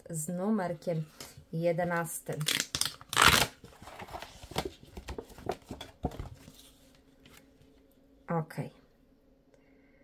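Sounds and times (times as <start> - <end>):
cardboard card rustling: 2.5 - 7.5.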